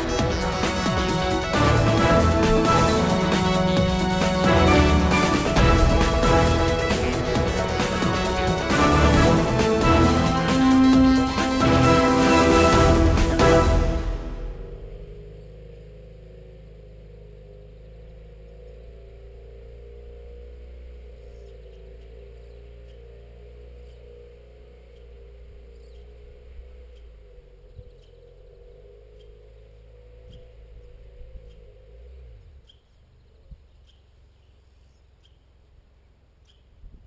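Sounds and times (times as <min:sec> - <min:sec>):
low steady hum: 0:00.0 - 0:37.0
small bird chirping: 0:20.9 - 0:37.0.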